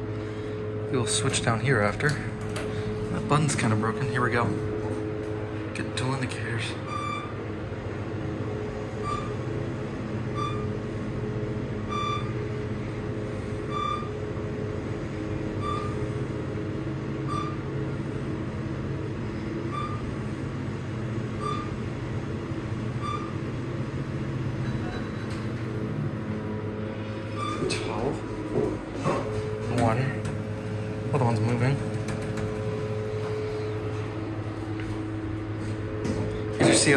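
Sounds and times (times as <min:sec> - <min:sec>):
elevator hum and rumble: 0:00.0 - 0:36.9
short high beeps: 0:06.8 - 0:07.3, 0:10.4 - 0:10.7, 0:11.9 - 0:12.3.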